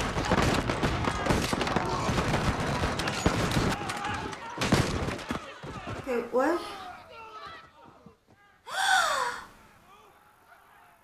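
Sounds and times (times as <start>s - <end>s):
woman gasping: 8.7s - 9.5s.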